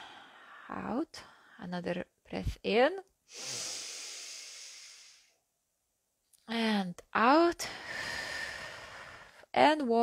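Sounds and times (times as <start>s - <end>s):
woman breathing in through nose: 3.3s - 5.3s, 7.8s - 9.4s.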